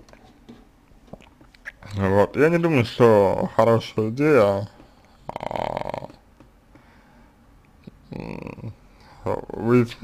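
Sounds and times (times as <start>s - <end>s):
man's voice: 5.3s - 6.2s.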